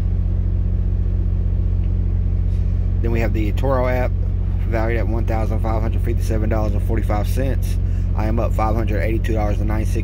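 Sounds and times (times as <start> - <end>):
pulsing low rumble: 0.0 - 10.0.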